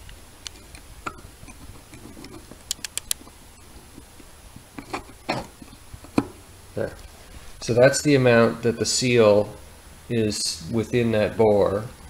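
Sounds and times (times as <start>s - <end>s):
caliper clicks and taps: 2.7s - 3.2s
sharp ticks: 2.7s - 3.2s.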